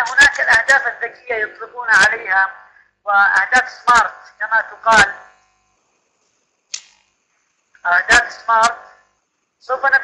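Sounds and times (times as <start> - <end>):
man speaking: 0.0 - 5.3.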